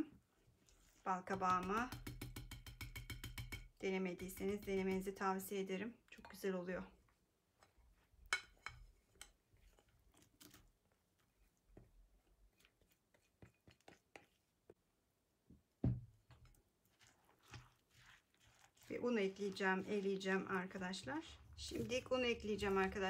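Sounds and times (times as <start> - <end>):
spatula clicking on bowl: 1.3 - 5.1
spatula scraping glass bowl: 16.4 - 23.0.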